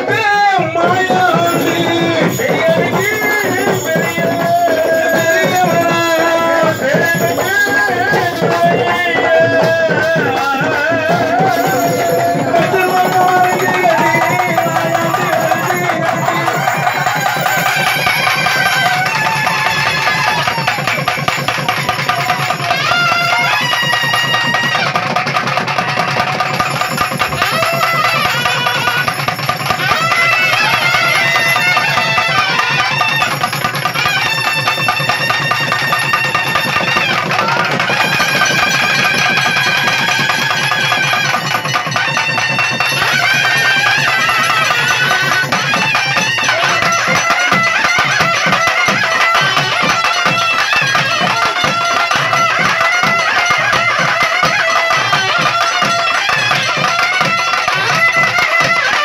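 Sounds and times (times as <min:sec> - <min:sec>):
fast dense drumming: 0:00.0 - 0:58.7.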